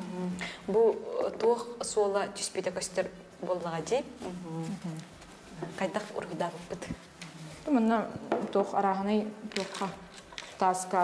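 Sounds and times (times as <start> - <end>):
women speaking: 0.0 - 11.0.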